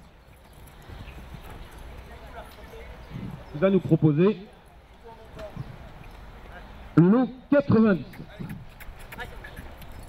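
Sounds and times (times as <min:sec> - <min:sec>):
hooves thudding on grass and sand: 0:00.0 - 0:06.7, 0:07.5 - 0:10.0.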